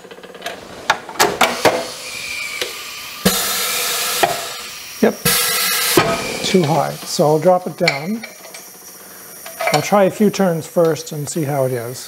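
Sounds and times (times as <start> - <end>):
air hiss from press clamp: 1.2 - 12.0.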